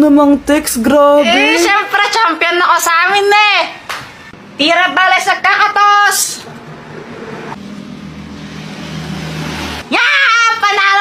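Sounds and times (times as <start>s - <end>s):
vehicle engine humming: 6.4s - 10.0s.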